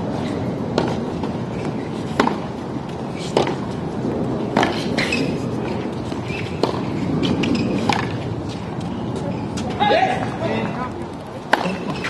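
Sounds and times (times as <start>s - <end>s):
tennis ball struck by rackets: 0.7s - 2.5s, 3.2s - 3.7s, 4.4s - 5.4s, 6.1s - 8.2s, 11.5s - 12.0s.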